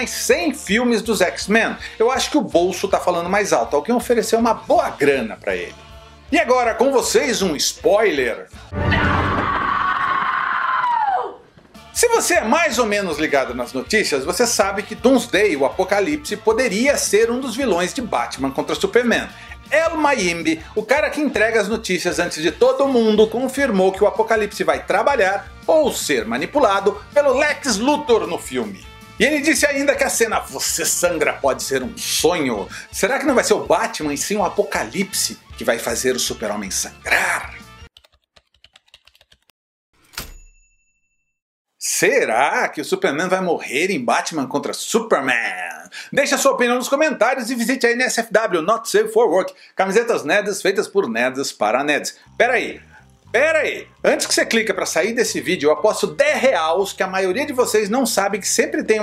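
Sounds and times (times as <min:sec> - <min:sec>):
high-pitched scream: 0:08.7 - 0:11.4
keyboard typing clicks: 0:38.0 - 0:39.5.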